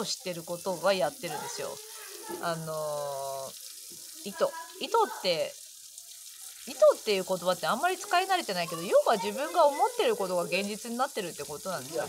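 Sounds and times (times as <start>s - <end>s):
woman speaking: 0.0s - 1.8s, 2.4s - 3.5s, 4.3s - 5.5s, 6.7s - 12.0s
faint steady hiss: 0.0s - 12.0s.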